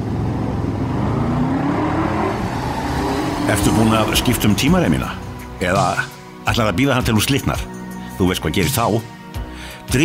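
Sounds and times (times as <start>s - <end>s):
car engine rumbling: 0.0s - 6.7s.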